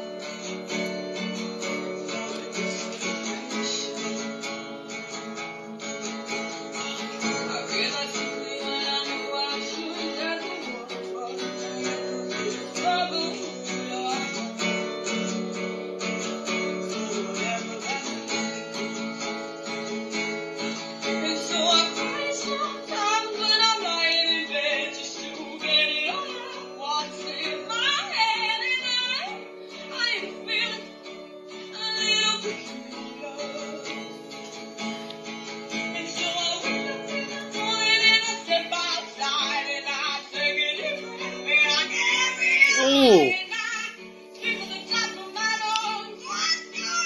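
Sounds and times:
young woman singing: 0:00.0 - 0:19.4, 0:20.6 - 0:34.9, 0:35.5 - 0:47.0
acoustic guitar strumming: 0:00.0 - 0:47.0.

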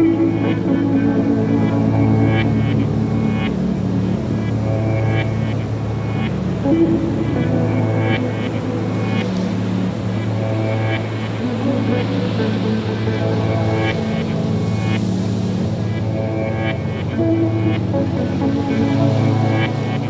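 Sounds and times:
low drone: 0:00.0 - 0:20.0
soft pitched notes: 0:00.0 - 0:20.0.

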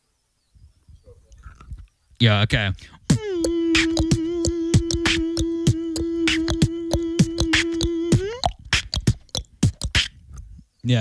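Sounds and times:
beatboxing: 0:02.8 - 0:10.5
hummed note: 0:03.1 - 0:08.6.

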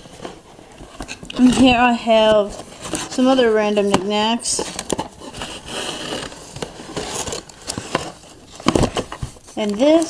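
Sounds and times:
rustling and scraping of objects: 0:00.0 - 0:10.0.

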